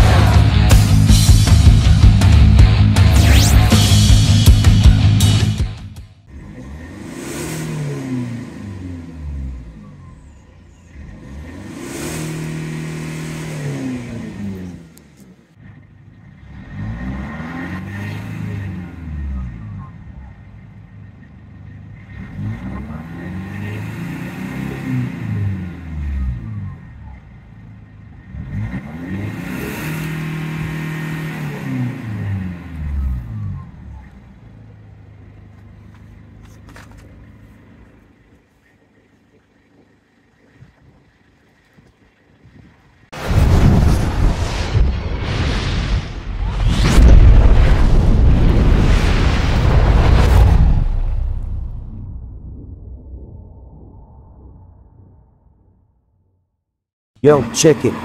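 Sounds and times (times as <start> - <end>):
diesel engine revving: 0.0 - 52.7, 57.2 - 58.0.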